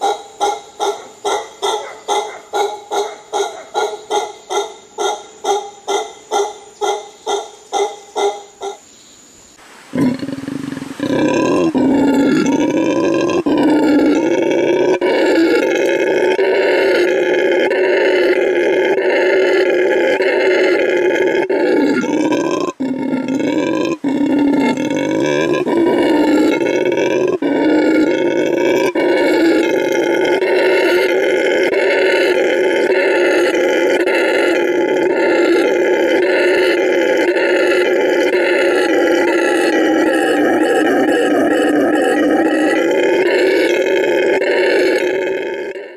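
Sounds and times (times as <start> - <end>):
howler monkeys howling: 0.0 - 8.8, 9.9 - 45.9.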